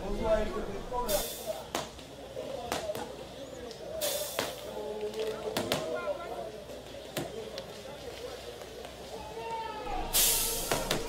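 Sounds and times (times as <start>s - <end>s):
faint voices: 0.0s - 11.0s
short hissing bursts: 1.1s - 1.6s, 4.0s - 4.7s, 9.9s - 11.0s.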